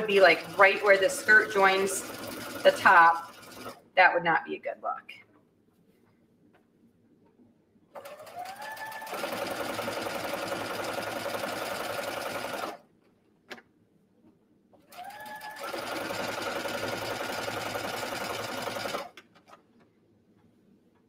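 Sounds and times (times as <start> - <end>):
sewing machine stitching: 0.0 - 3.8, 8.0 - 12.8, 14.9 - 19.2.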